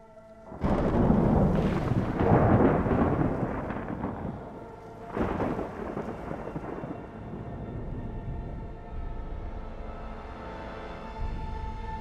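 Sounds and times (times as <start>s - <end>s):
thunder rumbling: 0.5s - 9.6s.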